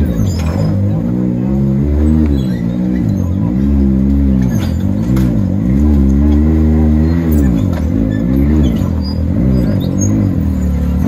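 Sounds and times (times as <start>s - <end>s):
engine revving in throttle blips: 0.0s - 11.0s.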